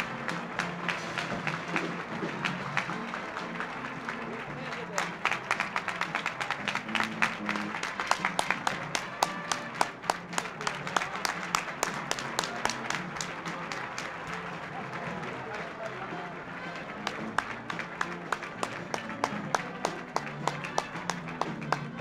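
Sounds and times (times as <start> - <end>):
crowd applauding: 0.0 - 22.0
music: 0.0 - 22.0.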